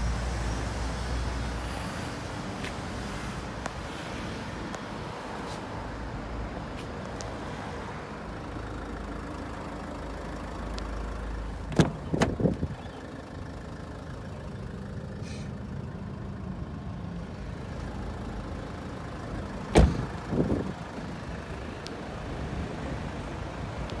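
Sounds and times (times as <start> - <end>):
low vehicle rumble: 5.7 - 24.0
car door latch click: 11.7 - 12.6, 19.7 - 20.1
car door knocks: 19.7 - 20.1.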